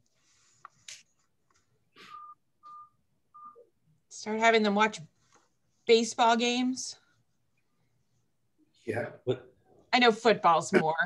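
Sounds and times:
short electronic beeps: 0:02.0 - 0:03.7.

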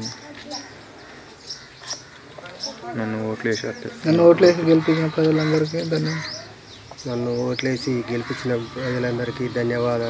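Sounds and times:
small birds chirping: 0:00.0 - 0:10.0
man talking into a microphone: 0:02.9 - 0:06.3, 0:07.0 - 0:10.0.

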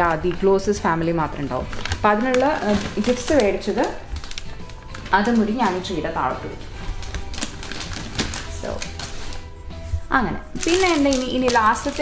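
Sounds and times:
soft background music: 0:00.0 - 0:12.0
wrapping paper crackling: 0:00.0 - 0:12.0.

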